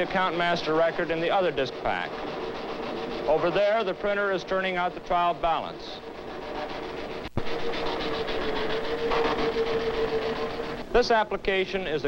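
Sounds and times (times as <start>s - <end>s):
machinery humming: 0.0s - 11.9s.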